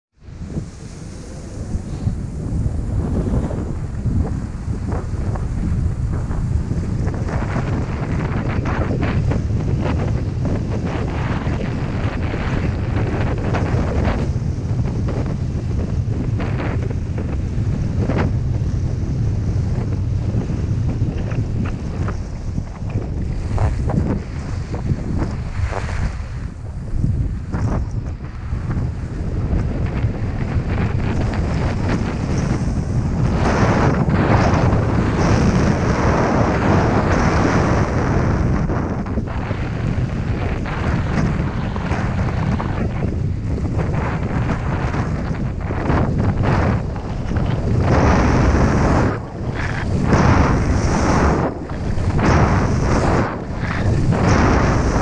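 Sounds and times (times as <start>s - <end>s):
wind blasting on microphone: 0.0s - 55.0s
skis scraping on snow: 0.4s - 15.1s, 19.0s - 55.0s.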